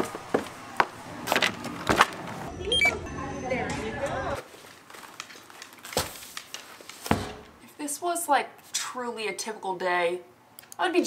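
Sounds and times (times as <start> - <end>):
store checkout hum: 0.0 - 4.4
barcode scanner beeps: 2.5 - 3.7.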